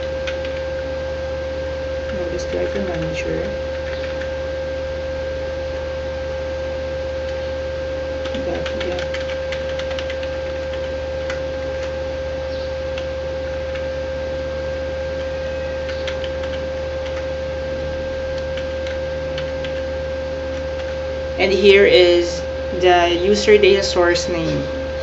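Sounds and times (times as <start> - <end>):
loud steady hum: 0.0 - 25.0
keyboard typing clicks: 0.2 - 0.6, 2.8 - 4.3, 8.2 - 11.9, 15.8 - 17.3, 18.4 - 19.8.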